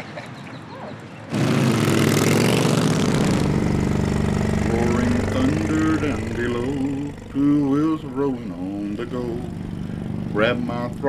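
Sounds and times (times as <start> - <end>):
motorcycle engine running: 1.4 - 11.0
song with singing voice: 4.6 - 11.0.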